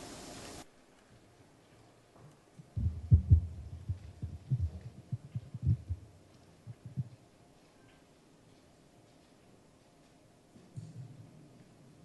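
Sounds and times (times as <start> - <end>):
dull low thumps: 2.6 - 7.2.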